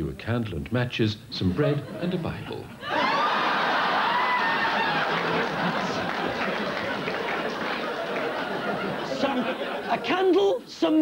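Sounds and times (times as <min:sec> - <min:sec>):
studio audience laughing: 0:01.6 - 0:10.2.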